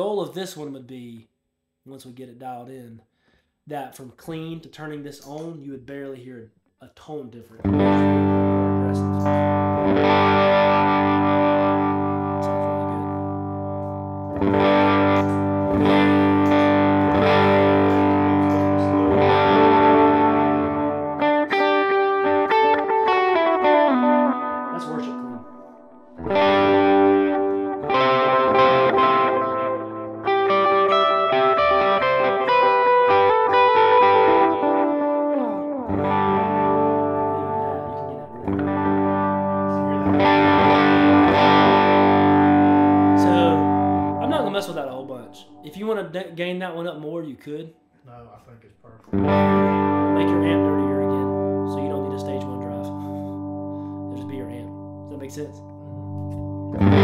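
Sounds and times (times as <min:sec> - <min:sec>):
electric guitar with delay and reverb: 0:07.6 - 0:46.2, 0:49.0 - 0:57.0.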